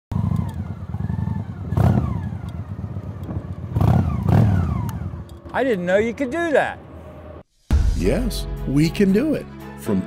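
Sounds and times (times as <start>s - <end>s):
motorcycle engine revving: 0.1s - 5.5s.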